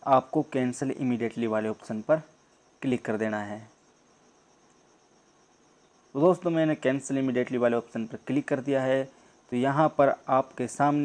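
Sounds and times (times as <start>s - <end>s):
faint high-pitched hiss: 0.0s - 11.0s.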